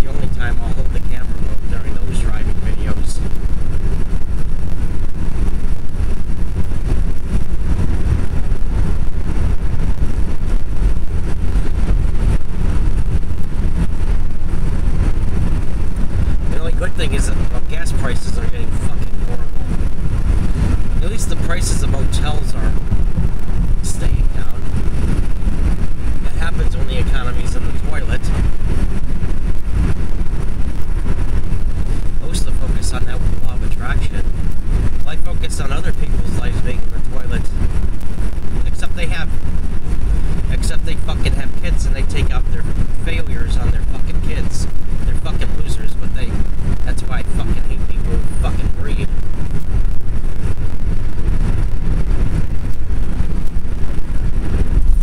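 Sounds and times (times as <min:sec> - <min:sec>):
car cabin road rumble: 0:00.0 - 0:55.0.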